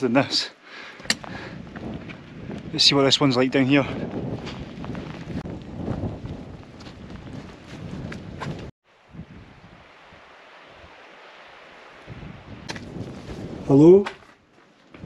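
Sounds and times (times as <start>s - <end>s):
faint steady wind hiss: 0.0s - 4.0s, 8.8s - 15.0s
wind buffeting microphone: 1.0s - 11.0s, 11.9s - 15.0s
rustling and small knocks: 12.6s - 15.0s.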